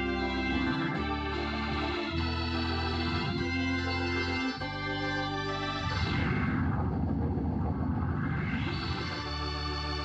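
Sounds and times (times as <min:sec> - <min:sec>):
organ music: 0:00.0 - 0:10.0.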